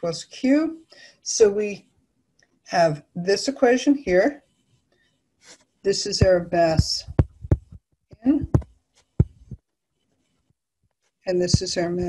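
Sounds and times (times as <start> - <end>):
dull taps: 6.2 - 9.6.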